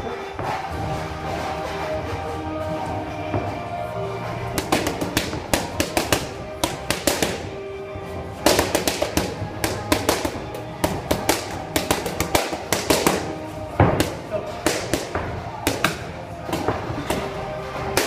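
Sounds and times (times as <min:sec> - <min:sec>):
background music: 0:00.0 - 0:18.0
boxing gloves slapping mitts: 0:00.4 - 0:18.0.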